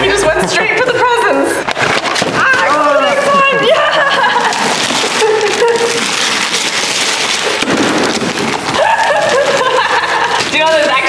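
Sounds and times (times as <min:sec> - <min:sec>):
wrapping paper ripping and crumpling: 0:01.6 - 0:11.0.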